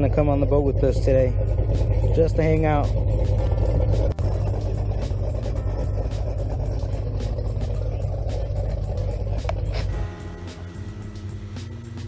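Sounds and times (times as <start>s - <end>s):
wind buffeting microphone: 0.0s - 10.2s
outboard motor rumbling: 0.0s - 12.0s.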